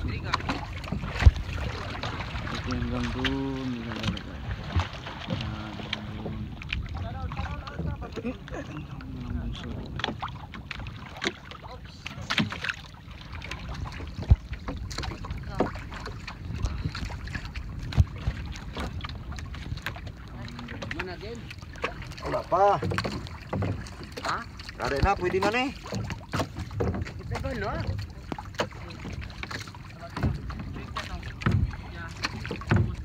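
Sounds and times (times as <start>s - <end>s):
wind on microphone: 0.0s - 11.2s, 11.9s - 24.0s
water splashing against boats: 0.0s - 33.0s.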